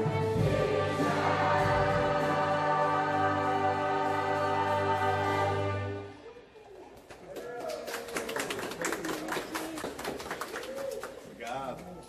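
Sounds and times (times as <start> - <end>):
audience applause: 6.9 - 12.0.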